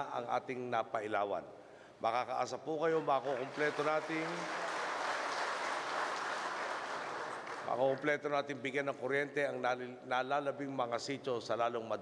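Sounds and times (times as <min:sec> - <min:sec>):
audience applauding: 0:03.0 - 0:08.0.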